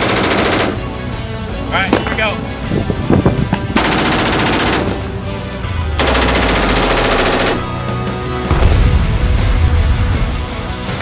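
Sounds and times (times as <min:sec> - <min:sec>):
rifle firing full auto bursts: 0:00.0 - 0:00.8, 0:03.8 - 0:05.0, 0:06.0 - 0:07.8.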